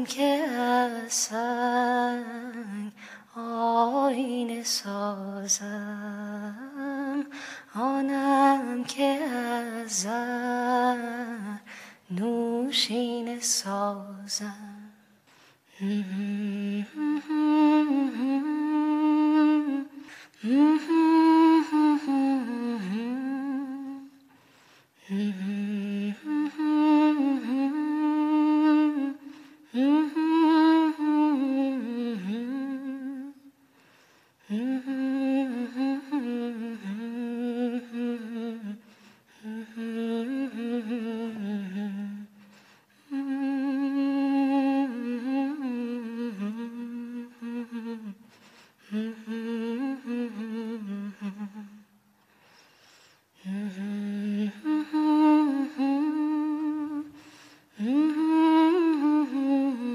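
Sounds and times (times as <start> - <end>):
woman humming a melody: 15.8 - 24.2, 25.1 - 33.4, 43.0 - 48.2, 53.4 - 57.2, 57.8 - 59.9.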